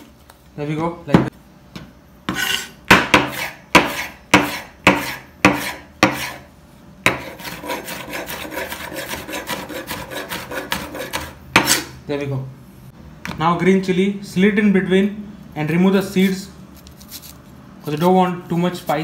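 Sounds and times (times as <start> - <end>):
quick knife chopping: 9.1 - 11.9.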